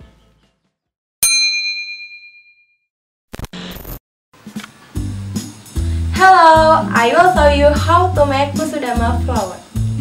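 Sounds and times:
bright bell ding: 0:01.2 - 0:02.8.

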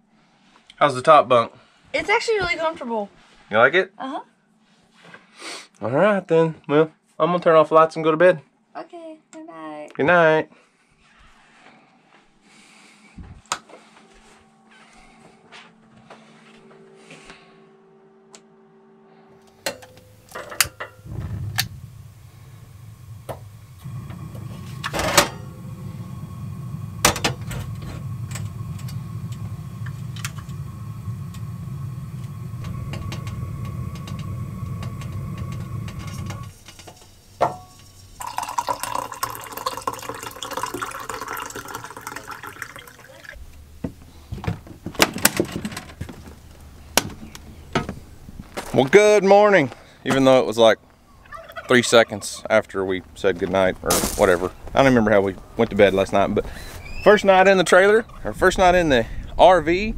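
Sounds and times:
gas burner running: 0:19.4 - 0:49.0, 0:52.6 - 0:59.9
stove clicks: 0:19.6 - 0:21.8, 0:23.2 - 0:37.0
coffee pouring into a mug: 0:37.4 - 0:43.4.

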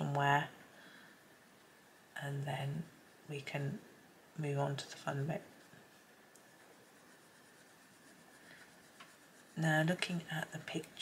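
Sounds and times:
coloured pencil rubbing on paper: 0:05.5 - 0:10.7.

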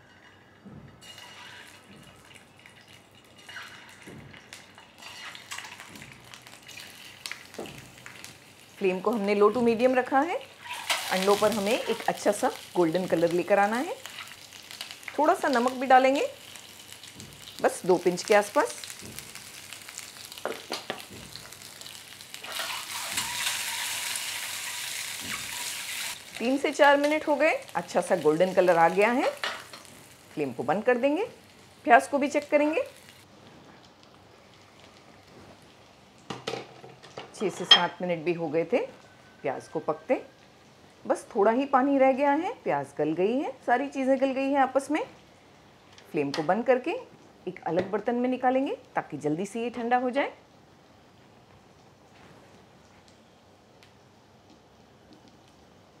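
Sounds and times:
hot oil sizzling and spitting: 0:00.0 - 0:42.3.

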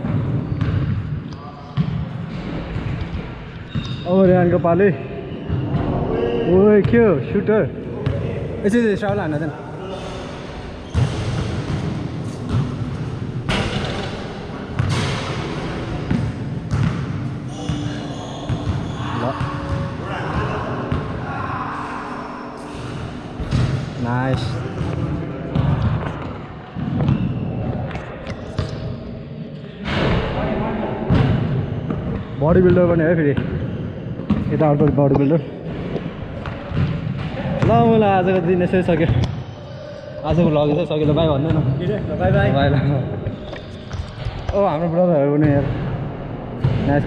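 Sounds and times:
basketball bouncing on court floor: 0:00.0 - 0:01.0, 0:10.8 - 0:14.1, 0:14.8 - 0:19.9
voices echoing in a gym: 0:00.0 - 0:47.0.

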